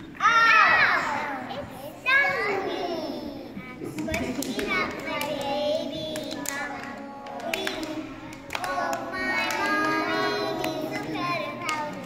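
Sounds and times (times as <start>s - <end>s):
children chattering: 0.0s - 12.0s
hand claps: 3.8s - 12.0s.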